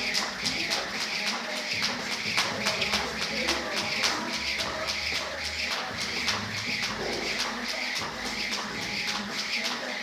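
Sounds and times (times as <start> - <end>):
jump rope ticking on floor: 0.0 - 10.0.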